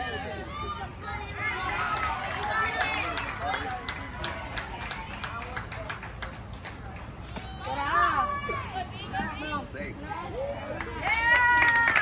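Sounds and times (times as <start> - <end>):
voices cheering: 0.0 - 6.5, 7.1 - 9.1, 10.2 - 12.0
loud shout: 10.9 - 12.0.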